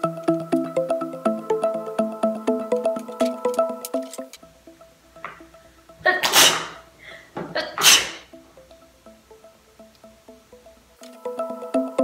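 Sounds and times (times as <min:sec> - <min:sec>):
soft background music: 0:00.0 - 0:12.0
person sneezing: 0:06.1 - 0:06.8, 0:07.5 - 0:08.3.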